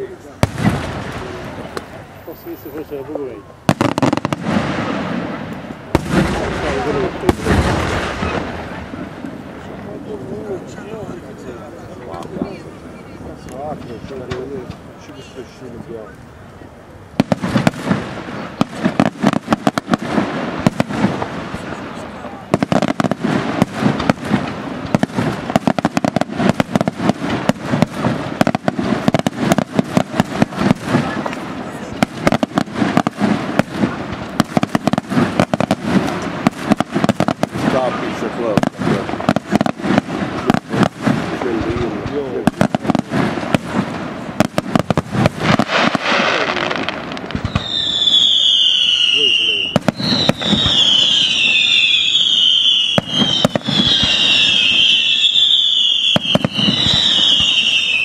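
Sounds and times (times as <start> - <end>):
fireworks crackling bangs: 0.0 - 58.0
fireworks whistles falling in pitch: 44.4 - 58.0.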